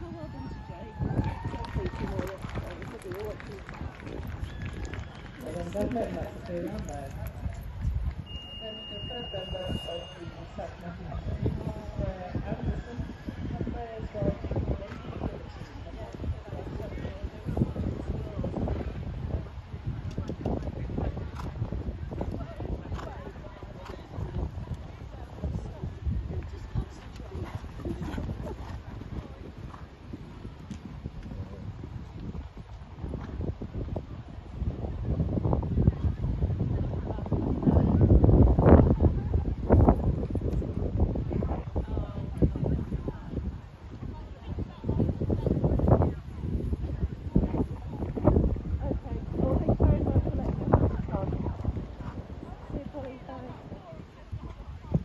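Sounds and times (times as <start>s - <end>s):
people talking: 0.0s - 7.7s, 8.4s - 29.5s, 35.8s - 40.2s, 41.2s - 55.0s.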